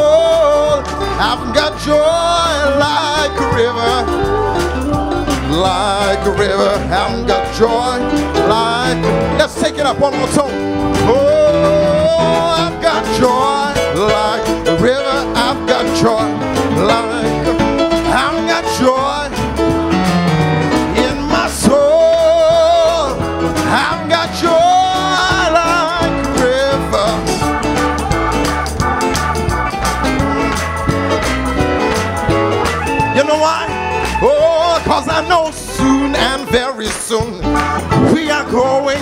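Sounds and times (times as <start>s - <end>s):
voices singing along: 0.0s - 17.5s, 20.9s - 37.4s
praise band playing gospel song: 0.0s - 39.0s
strong bass line: 0.0s - 39.0s.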